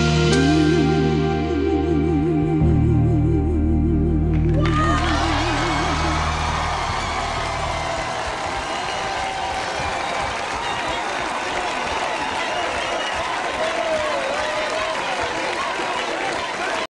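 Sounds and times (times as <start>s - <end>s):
sustained music chord: 0.0s - 8.2s
audience applauding and cheering: 4.4s - 16.9s
people shouting: 4.6s - 11.0s.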